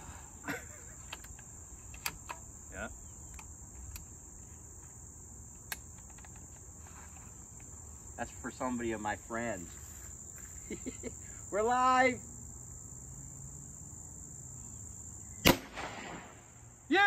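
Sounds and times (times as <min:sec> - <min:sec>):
crickets chirping: 0:00.0 - 0:17.0
air rifle clicks: 0:05.6 - 0:06.6.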